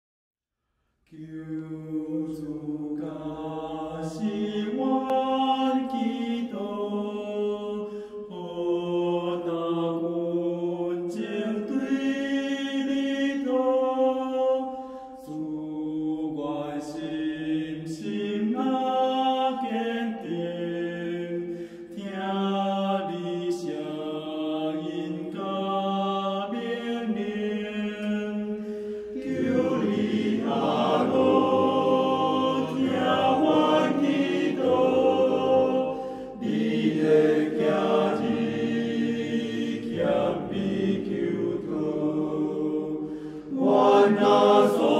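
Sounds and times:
choir singing a hymn: 0:01.2 - 0:44.9.

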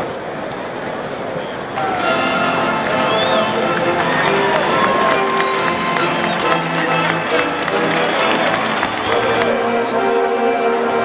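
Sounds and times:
crowd talking and calling out: 0:00.0 - 0:11.0
sharp claps: 0:01.8 - 0:09.5
band music with held notes: 0:01.8 - 0:11.0.

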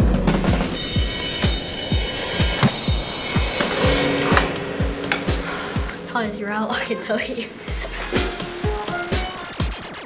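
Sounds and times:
cymbal wash: 0:00.0 - 0:10.0.

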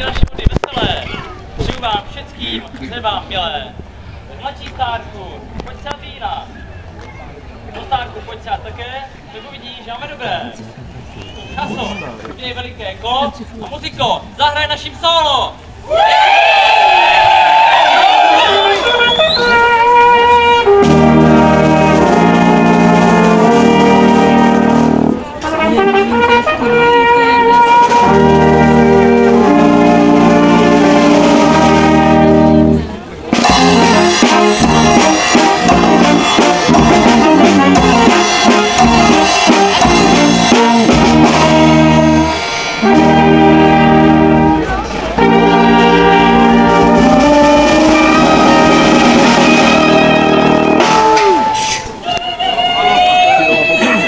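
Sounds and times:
brass band playing folk tune: 0:17.9 - 0:54.0.

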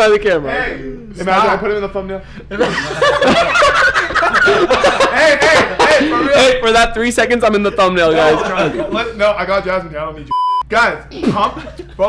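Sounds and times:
people laughing hard: 0:02.5 - 0:06.6, 0:07.5 - 0:09.2, 0:11.2 - 0:12.0.

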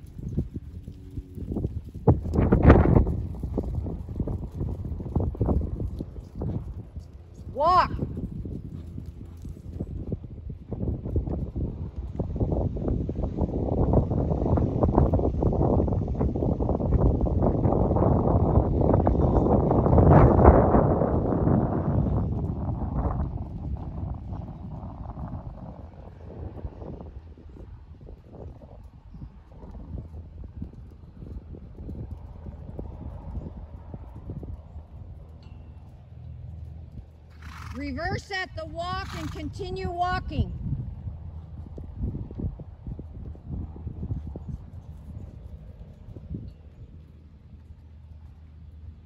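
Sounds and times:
horse hooves on sand: 0:00.0 - 0:17.9, 0:19.8 - 0:49.0
steady low rumble: 0:00.0 - 0:49.0.

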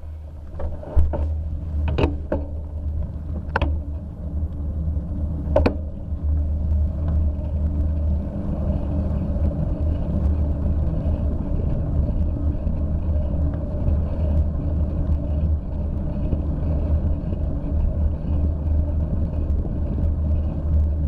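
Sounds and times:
wind and road rumble: 0:00.0 - 0:21.0.

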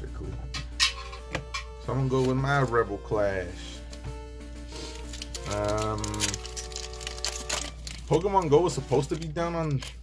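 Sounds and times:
background music with held notes: 0:00.0 - 0:10.0
foil wrapper crinkling and tearing: 0:04.8 - 0:10.0.

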